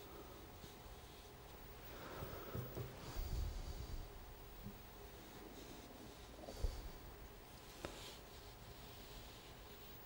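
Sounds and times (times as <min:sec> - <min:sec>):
brush stroking wet paint on paper: 0:00.0 - 0:02.2, 0:02.9 - 0:10.0
soft nasal breathing: 0:00.0 - 0:10.0.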